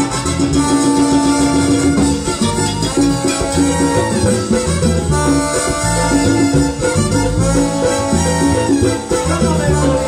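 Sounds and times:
bass notes: 0.0s - 10.0s
conga drums: 0.0s - 10.0s
salsa band playing: 0.0s - 10.0s.

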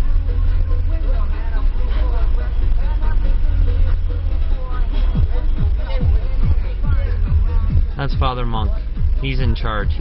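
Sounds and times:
car interior rumble: 0.0s - 10.0s
people talking indistinctly: 0.0s - 10.0s.

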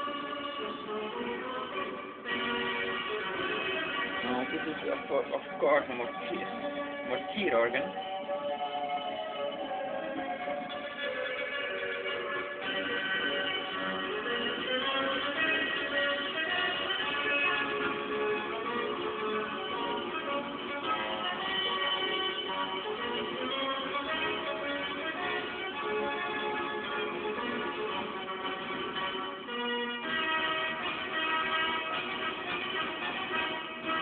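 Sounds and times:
organ music from record player: 0.0s - 34.0s.

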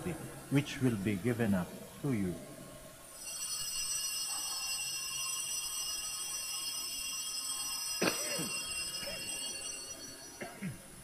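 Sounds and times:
altar bells ringing: 3.2s - 11.0s.

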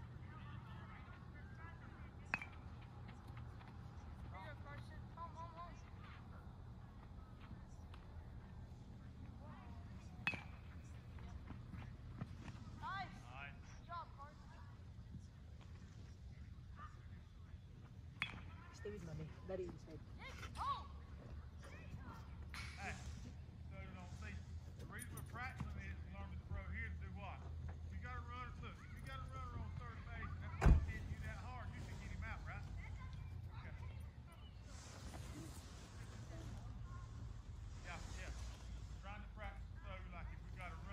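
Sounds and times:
faint voices calling and talking: 0.0s - 40.9s
bat striking ball with metallic ring: 10.2s - 10.6s.

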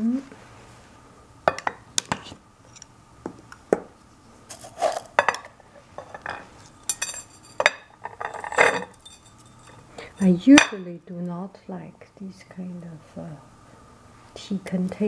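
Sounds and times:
metal spoon scraping and clinking: 6.0s - 10.8s.

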